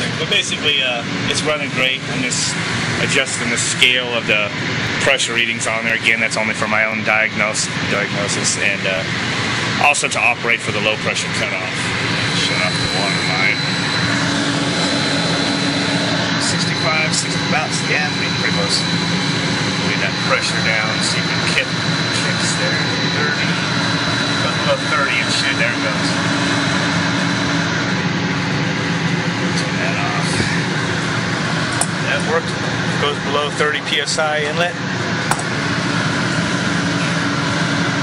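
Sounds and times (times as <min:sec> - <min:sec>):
water pump running: 0:00.0 - 0:38.0.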